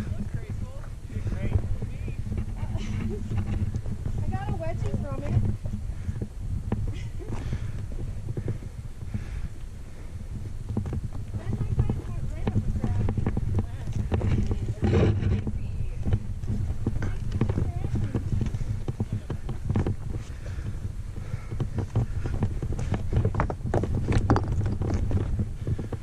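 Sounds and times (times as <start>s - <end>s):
boots scrambling over rock: 0.0s - 26.0s
steady low rumble: 0.0s - 26.0s.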